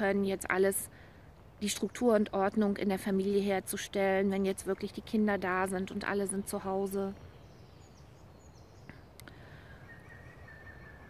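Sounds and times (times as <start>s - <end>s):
high bird chirps: 6.2s - 11.0s.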